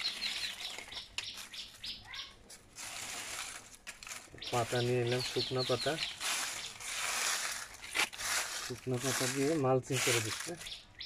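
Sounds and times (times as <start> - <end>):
dry leaves rustling and crackling: 0.0 - 11.0.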